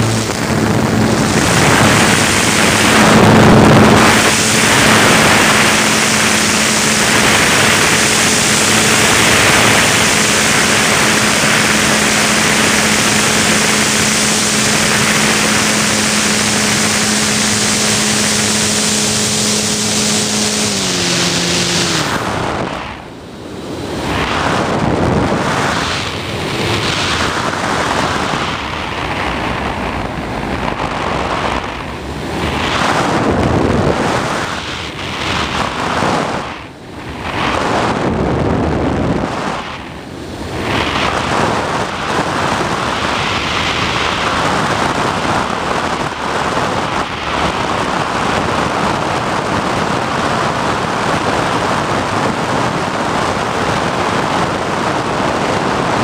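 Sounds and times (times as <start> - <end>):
steady low hum: 0.0 - 56.0
wind rushing over camera: 0.0 - 56.0.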